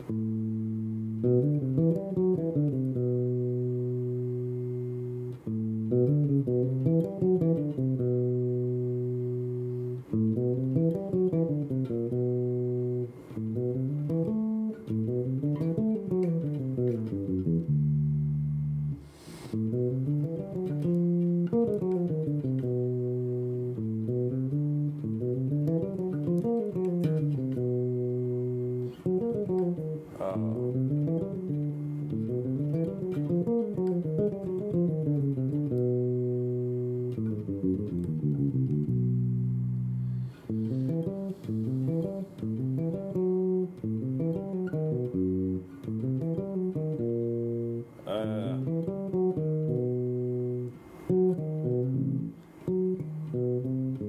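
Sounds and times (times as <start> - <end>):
solo electric bass playing: 0.0 - 54.0.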